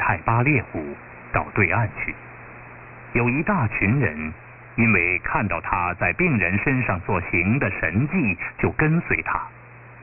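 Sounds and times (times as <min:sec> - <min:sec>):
muffled radio voice reading: 0:00.0 - 0:02.2
faint steady hum: 0:00.0 - 0:10.0.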